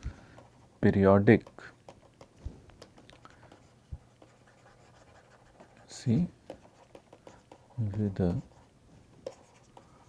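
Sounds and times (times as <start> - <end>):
stylus scratching on tablet: 0.3 - 10.0.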